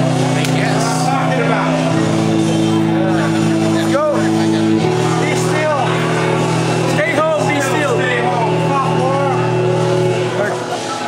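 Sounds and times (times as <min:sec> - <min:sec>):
faint voices: 0:00.0 - 0:11.0
low droning chord: 0:00.0 - 0:11.0.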